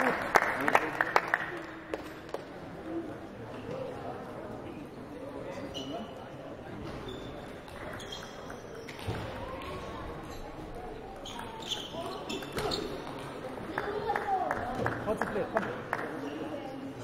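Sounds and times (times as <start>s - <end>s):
murmur of voices in a hall: 0.0s - 17.0s.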